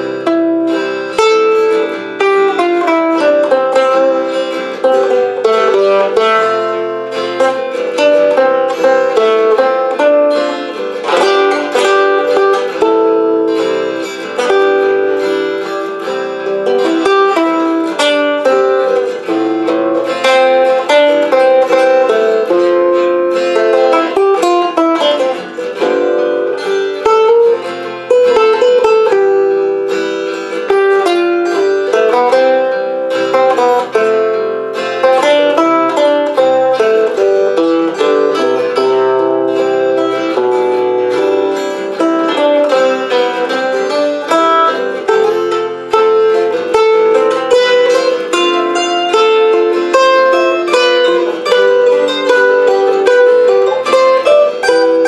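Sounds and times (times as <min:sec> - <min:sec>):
fingerpicked acoustic guitar: 0:00.0 - 0:55.0.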